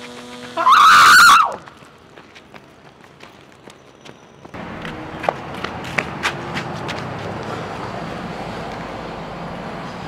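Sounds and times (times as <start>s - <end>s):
person screaming: 0.6s - 1.6s.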